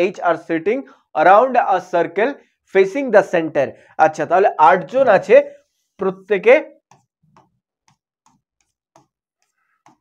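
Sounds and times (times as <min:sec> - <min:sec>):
pen tapping touchscreen: 0:06.8 - 0:10.0.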